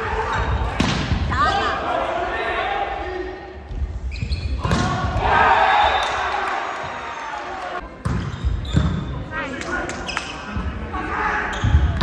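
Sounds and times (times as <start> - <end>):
players shouting and cheering: 0.0 - 3.7, 4.5 - 8.0, 9.4 - 12.0
sneakers squeaking on court: 3.7 - 4.8, 8.0 - 9.2.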